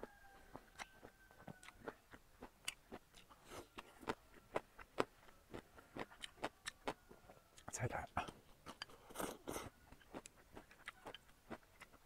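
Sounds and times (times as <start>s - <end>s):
person chewing food: 0.0s - 12.0s.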